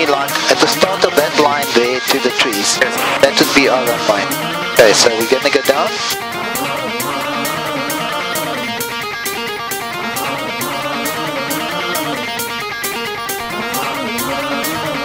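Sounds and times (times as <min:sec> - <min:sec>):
electric guitar over a beat: 0:00.0 - 0:15.0.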